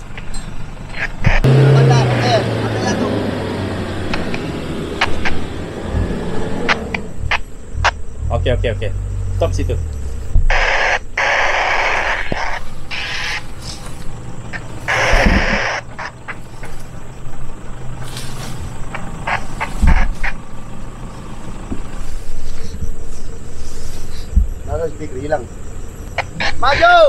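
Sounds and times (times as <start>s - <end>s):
engine idling: 0.0s - 27.0s.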